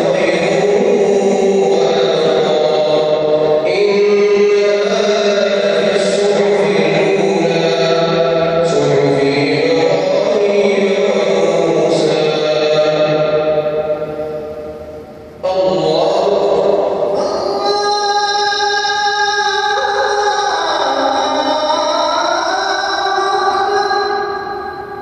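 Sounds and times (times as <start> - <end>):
man reciting melodic prayer chant: 0.0 - 25.0.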